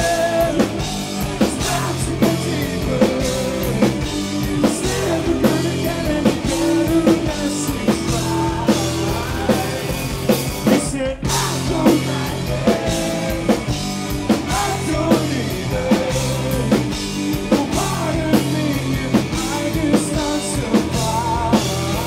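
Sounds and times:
live rock band playing: 0:00.0 - 0:22.0
person singing: 0:00.0 - 0:22.0.

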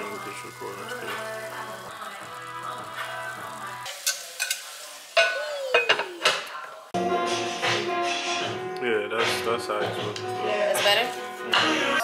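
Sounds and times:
shrimp sizzling in frying pan: 0:00.0 - 0:07.0
background music: 0:00.0 - 0:12.0.

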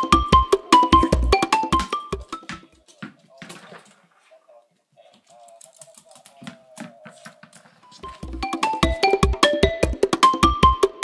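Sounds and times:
dog claws clicking on wooden floor: 0:05.2 - 0:07.8.

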